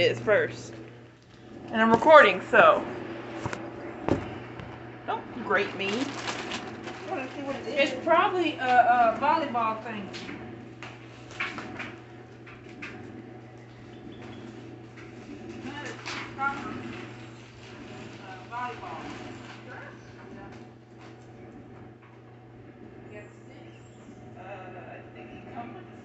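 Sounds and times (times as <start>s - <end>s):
distant voices talking: 0.0s - 3.0s, 3.6s - 10.4s
low hum: 0.0s - 26.0s.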